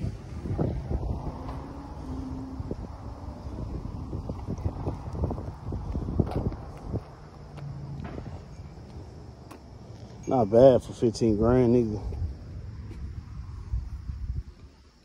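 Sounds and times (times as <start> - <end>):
wind rumbling on microphone: 0.0 - 15.0
footsteps on asphalt: 3.2 - 13.7.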